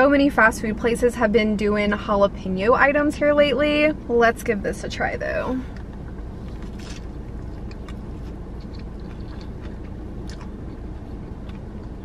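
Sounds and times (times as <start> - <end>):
car cabin low hum: 0.0 - 12.0
faint crunches: 5.7 - 12.0
person chewing crispy food: 5.7 - 12.0.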